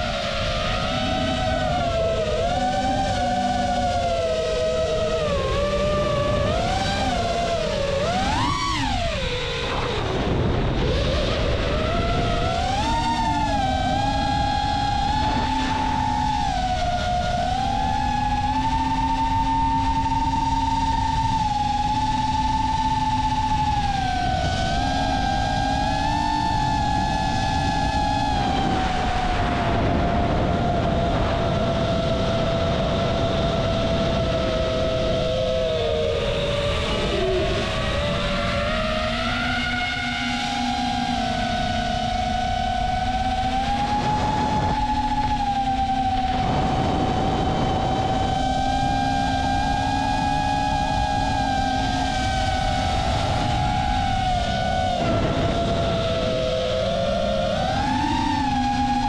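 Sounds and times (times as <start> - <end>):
drone propellers whining: 0.0 - 59.0.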